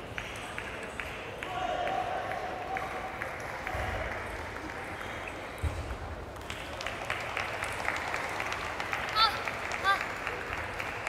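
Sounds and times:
spectators clapping and cheering: 0:00.0 - 0:11.0.

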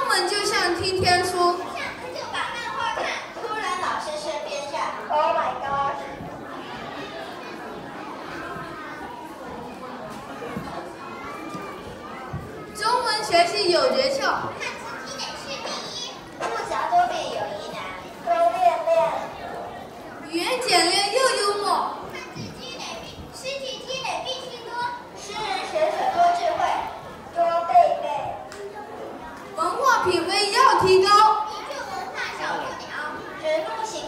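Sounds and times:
children talking: 0:00.0 - 0:34.0.

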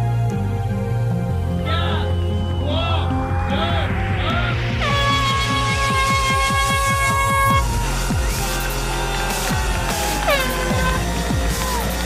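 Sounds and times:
background music with rising sweep: 0:00.0 - 0:12.0
air horn blast: 0:04.5 - 0:08.0, 0:10.0 - 0:11.8.

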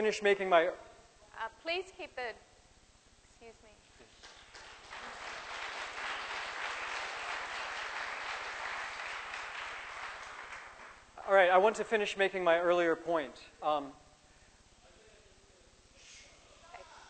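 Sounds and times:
audience applauding: 0:04.1 - 0:11.1.

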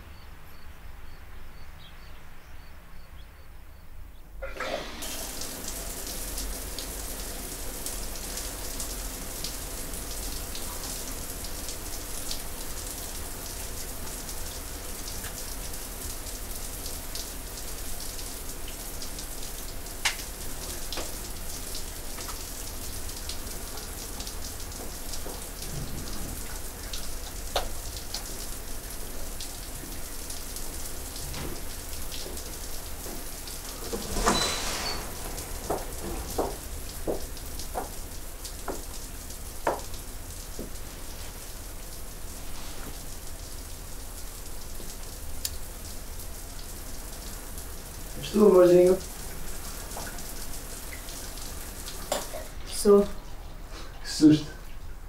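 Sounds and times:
patter of falling water: 0:04.4 - 0:55.0
small knocks: 0:35.6 - 0:38.0, 0:39.6 - 0:39.9.

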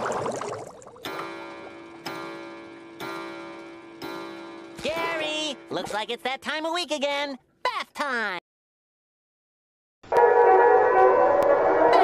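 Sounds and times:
cartoon bubble swirl: 0:00.0 - 0:01.0.

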